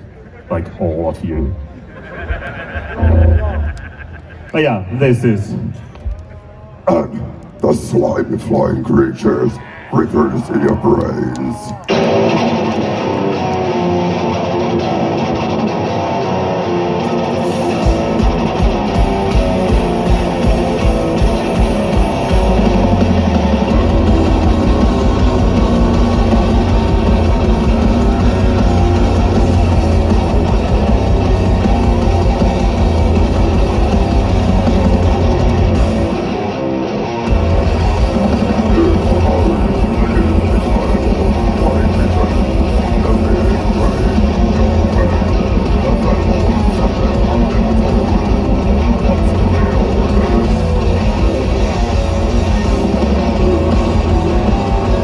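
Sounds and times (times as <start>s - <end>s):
death metal band playing live: 3.0s - 4.2s, 11.8s - 55.0s.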